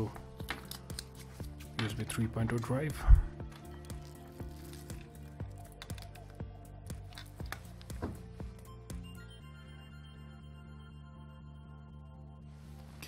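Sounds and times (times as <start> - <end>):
background music with held tones: 0.0 - 13.0.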